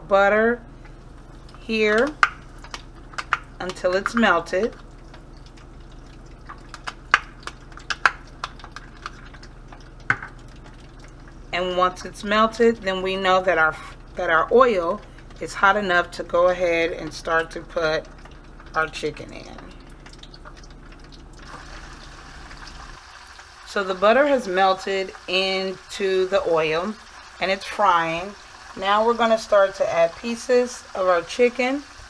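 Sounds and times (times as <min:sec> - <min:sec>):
hot oil crackling and popping: 0:00.7 - 0:32.0
oil sizzling in a frying pan: 0:20.3 - 0:32.0.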